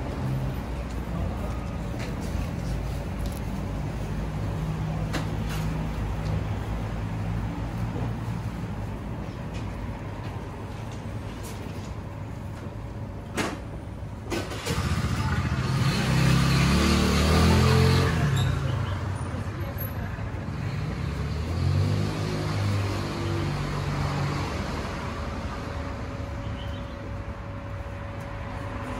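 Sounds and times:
vehicle engine rumble passing: 14.2s - 28.9s.

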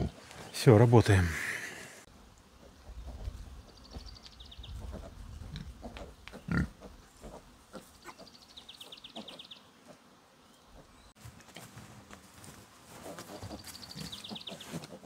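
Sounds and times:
pigs grunting: 0.0s - 0.2s, 4.8s - 8.4s.

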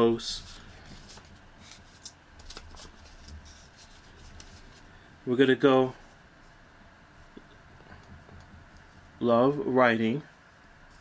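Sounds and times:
paper rustling: 0.4s - 4.9s.

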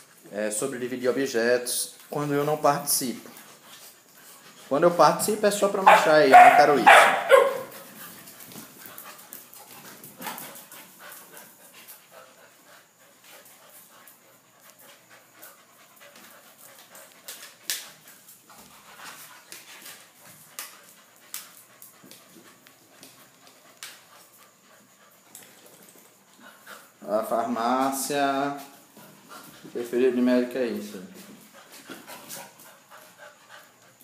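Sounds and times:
dogs scuffling: 0.0s - 34.0s
dogs panting: 2.0s - 34.0s.

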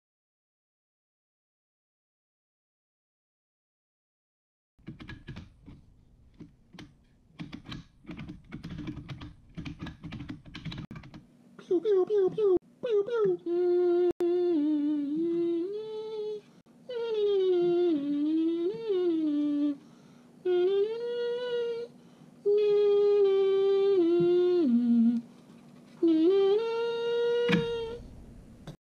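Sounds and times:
man humming a tune: 11.6s - 19.8s, 20.4s - 25.3s, 26.0s - 28.1s.

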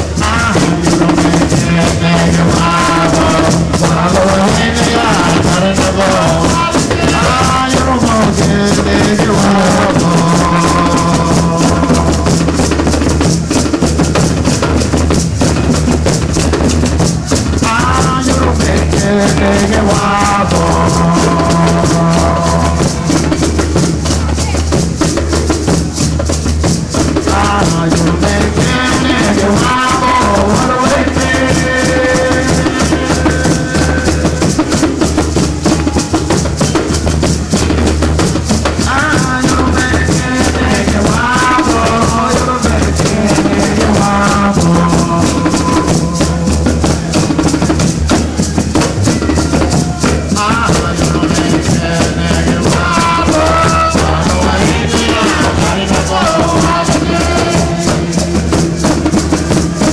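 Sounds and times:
man singing: 0.0s - 13.5s, 16.9s - 25.4s, 26.8s - 59.9s
drums: 0.0s - 59.9s
maracas: 0.0s - 59.9s.

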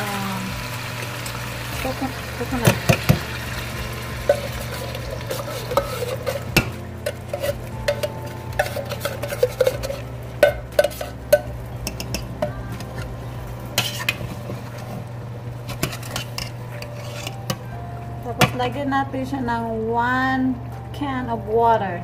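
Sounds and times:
steady low hum: 0.0s - 22.0s
metal spoon scraping metal pot: 4.2s - 12.3s, 13.8s - 14.6s, 15.7s - 17.7s.

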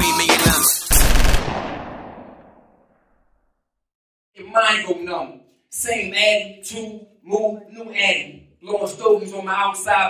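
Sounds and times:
echoing boom: 0.9s - 2.9s.

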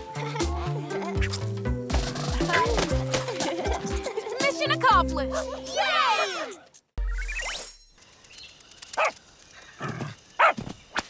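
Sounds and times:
faint jungle background: 5.3s - 11.0s.

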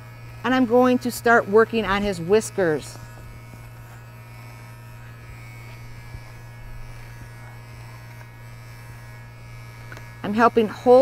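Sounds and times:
cordless clipper humming: 0.0s - 11.0s.

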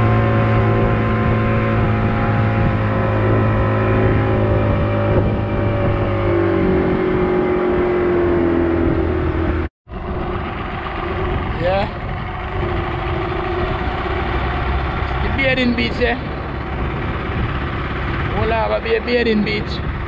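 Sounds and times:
outboard motor running: 0.0s - 20.0s.

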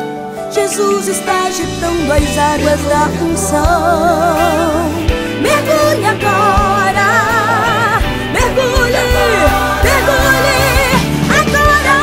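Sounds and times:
woman singing gospel song: 0.5s - 12.0s.

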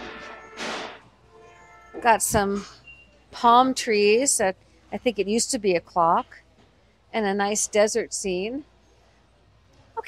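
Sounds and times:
store background music: 0.0s - 6.6s.

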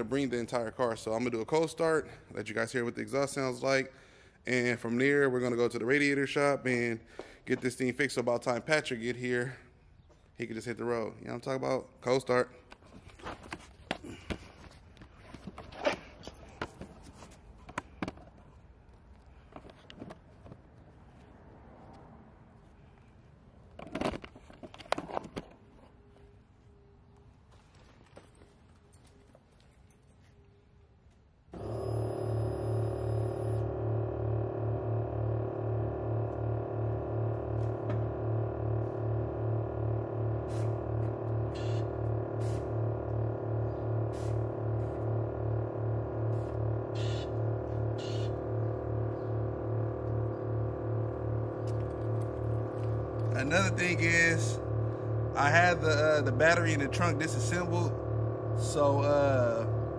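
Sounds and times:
air compressor humming: 13.3s - 18.2s, 31.5s - 59.9s.

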